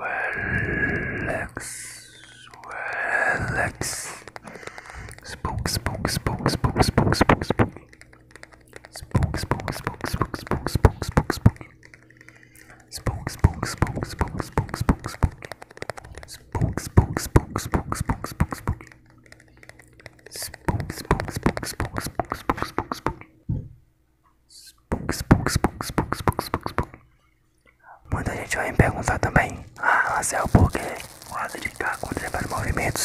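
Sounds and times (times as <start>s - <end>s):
faint whispered hiss: 0.0s - 23.2s, 24.5s - 27.1s, 27.7s - 33.0s
lip and tongue clicks: 1.6s - 23.2s.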